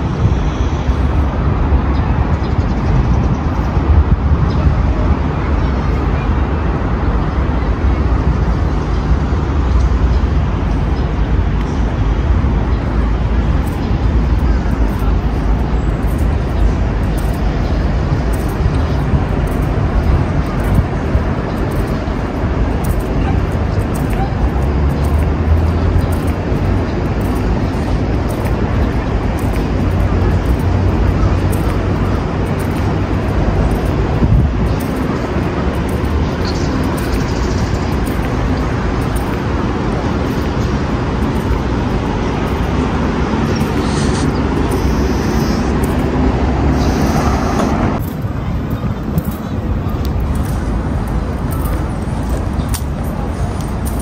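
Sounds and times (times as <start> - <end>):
city road traffic rumble: 0.0 - 54.0.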